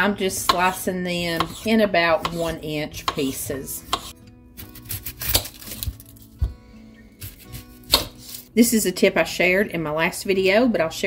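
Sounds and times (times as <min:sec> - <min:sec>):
soft background music: 0:00.0 - 0:11.0
knife on cutting board: 0:00.5 - 0:06.0, 0:07.2 - 0:08.5.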